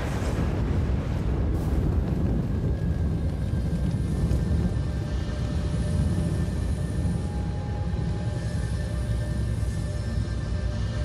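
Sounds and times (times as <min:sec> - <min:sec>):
deep explosion rumble: 0:00.0 - 0:06.4
film score held tones: 0:00.0 - 0:11.0.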